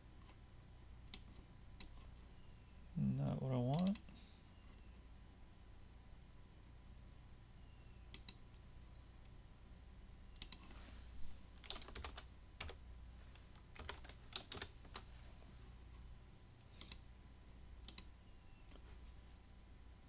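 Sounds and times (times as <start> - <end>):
low steady hum: 0.0 - 20.0
computer mouse clicks: 1.0 - 2.2, 8.1 - 8.6, 10.3 - 10.8, 16.6 - 17.1, 17.8 - 18.1
computer keyboard typing: 11.6 - 15.0, 16.7 - 17.0.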